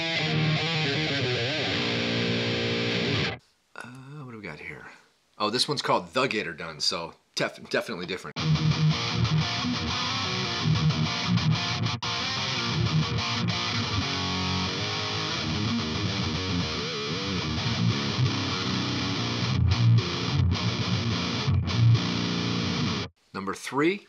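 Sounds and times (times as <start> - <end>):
distorted electric guitar riffs: 0.0 - 3.4, 8.4 - 23.1.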